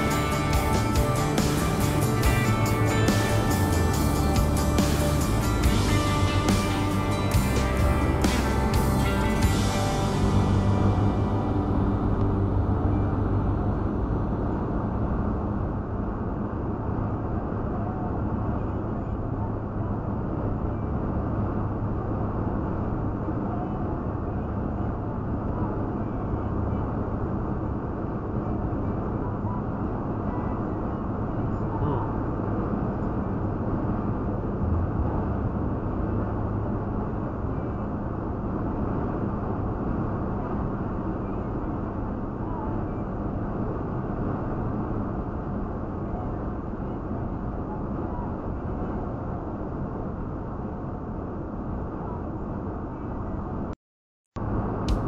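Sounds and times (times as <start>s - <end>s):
muffled road and engine noise: 0.0s - 53.8s, 54.4s - 55.0s.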